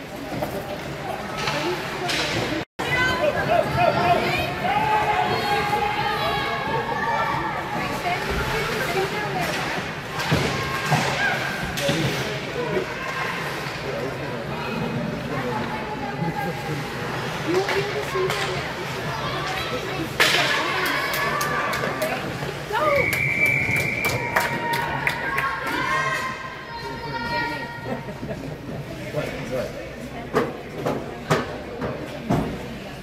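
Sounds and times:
spectators' voices: 0.0 - 33.0
sticks and puck hitting boards: 20.1 - 22.2.

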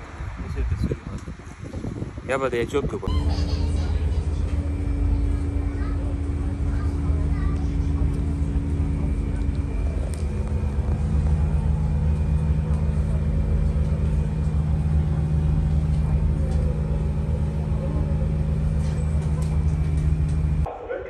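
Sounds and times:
train rumble and motor hum: 0.0 - 20.7.

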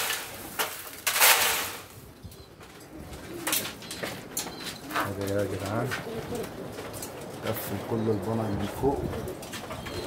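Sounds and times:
pigeons cooing: 2.7 - 10.0.

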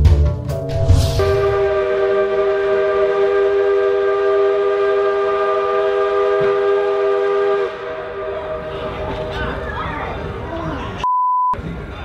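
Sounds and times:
locomotive horn: 1.1 - 9.7.

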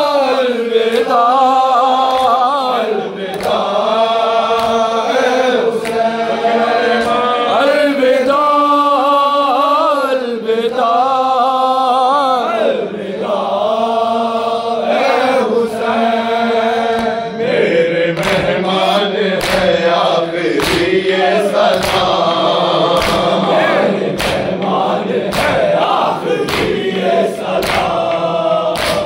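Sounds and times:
men chanting in unison: 0.0 - 29.0
hands slapping chests: 2.0 - 2.4, 3.3 - 3.8, 4.5 - 4.8, 5.7 - 6.1, 18.2 - 18.6, 19.4 - 20.0, 20.6 - 21.0, 21.6 - 29.0.

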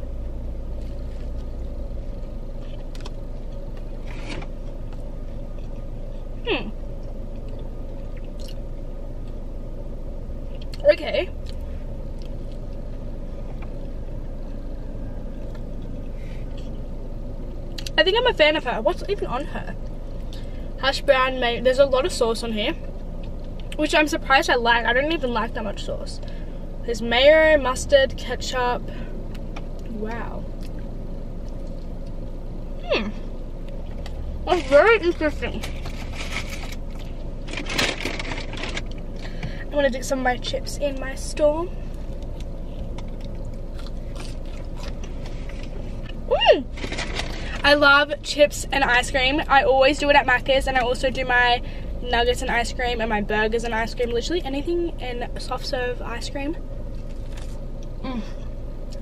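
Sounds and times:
car cabin hum: 0.0 - 59.0
burger being bitten and chewed: 0.6 - 5.9, 42.0 - 47.4, 56.9 - 58.0
paper packaging rustling: 46.8 - 47.6.

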